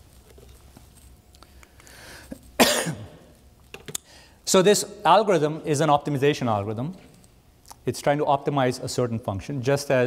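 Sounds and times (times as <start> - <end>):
person coughing: 2.6 - 3.3.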